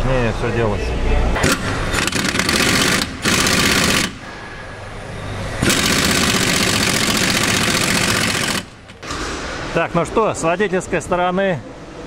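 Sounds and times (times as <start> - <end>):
impact wrench hammering: 1.4 - 4.4, 5.6 - 9.8.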